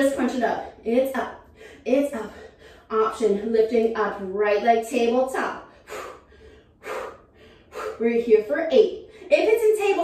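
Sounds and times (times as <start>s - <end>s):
woman breathing hard: 5.6s - 8.0s
woman gasping: 5.7s - 8.0s.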